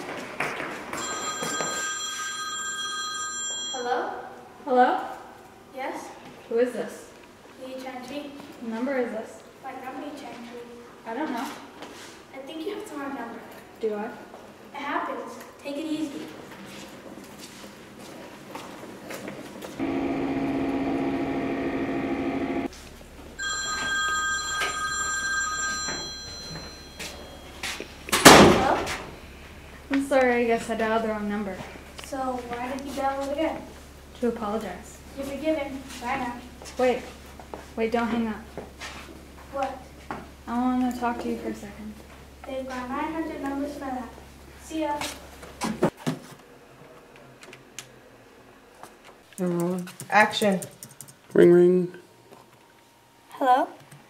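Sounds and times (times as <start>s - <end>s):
mobile phone ringing: 1.0s - 4.2s, 23.4s - 27.7s
footsteps on hard floor: 25.9s - 27.9s.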